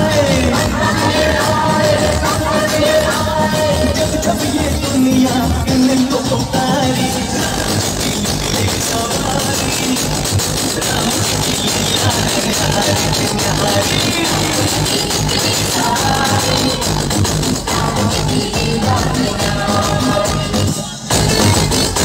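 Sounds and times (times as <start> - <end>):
electronic dance music with heavy bass: 0.0 - 22.0.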